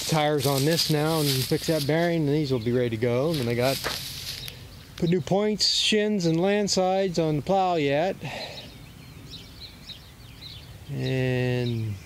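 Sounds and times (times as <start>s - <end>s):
low outdoor background noise: 0.0s - 12.0s
small birds chirping: 0.0s - 12.0s.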